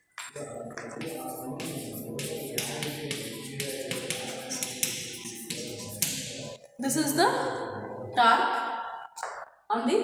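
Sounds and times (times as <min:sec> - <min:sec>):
chalk scratching on blackboard: 0:00.6 - 0:06.6.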